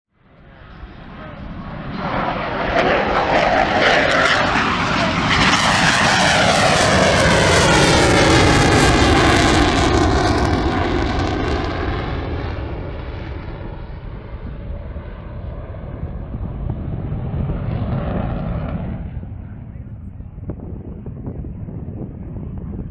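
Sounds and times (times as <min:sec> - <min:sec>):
jet engine roaring past: 0:00.2 - 0:22.9.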